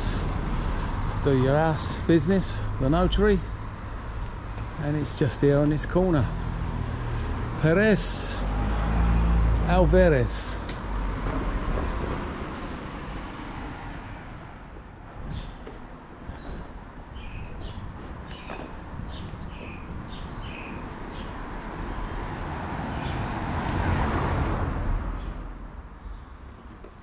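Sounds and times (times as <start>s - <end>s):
traffic rumble: 0.0s - 27.0s
car passing close: 6.2s - 14.8s, 21.1s - 25.7s
bird chirps: 16.4s - 21.4s.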